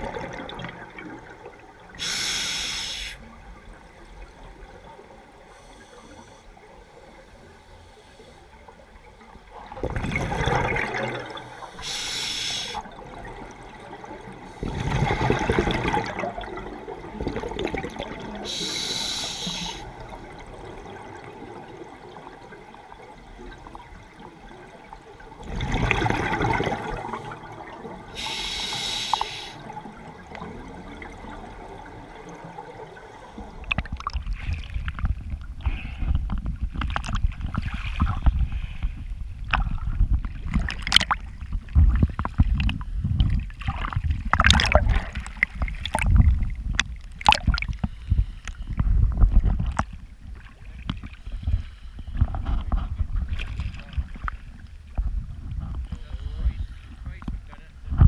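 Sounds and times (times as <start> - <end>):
exhaled bubbles gurgling: 0.0 - 5.5, 9.1 - 38.5, 39.4 - 48.0
regulator inhalation hiss: 2.0 - 3.2, 11.6 - 12.8, 18.5 - 19.9, 28.2 - 29.7
water sloshing: 19.8 - 28.4, 29.7 - 56.2.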